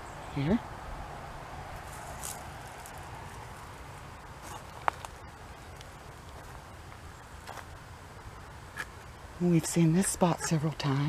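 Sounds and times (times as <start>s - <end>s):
low outdoor rumble: 0.0s - 11.0s
rustle in dry leaves: 1.7s - 7.7s.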